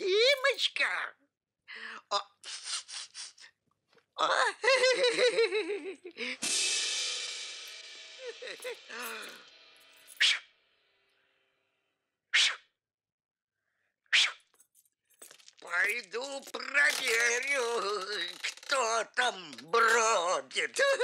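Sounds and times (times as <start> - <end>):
vocal sounds: 15.6 - 21.0.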